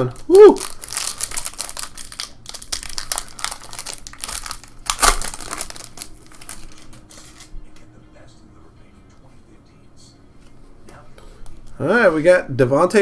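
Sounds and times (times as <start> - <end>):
card pack wrapper crinkling: 0.0 - 7.5
loud wrapper crackle: 0.0 - 7.5.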